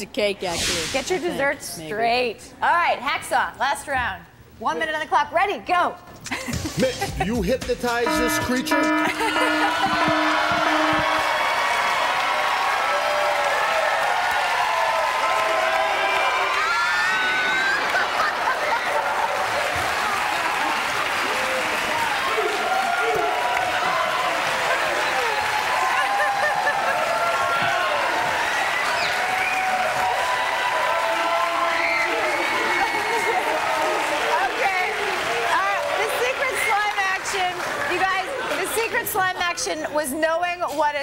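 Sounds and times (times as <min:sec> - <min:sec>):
audience cheering and shouting: 0:08.1 - 0:38.8
applause: 0:08.9 - 0:39.0.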